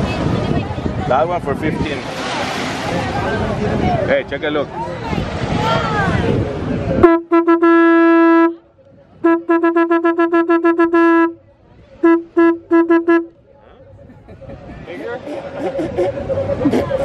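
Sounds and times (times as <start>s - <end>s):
conch shell horn blowing: 7.0s - 8.6s, 9.2s - 11.4s, 12.0s - 13.4s.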